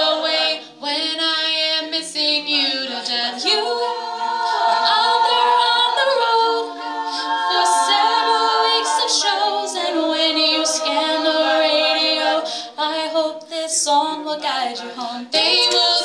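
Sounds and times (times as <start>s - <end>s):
female a cappella group singing: 0.0s - 16.0s.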